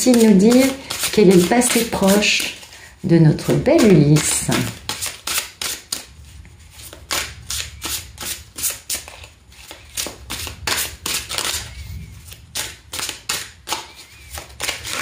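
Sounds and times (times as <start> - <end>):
cards being shuffled: 0.0 - 2.8, 3.4 - 15.0.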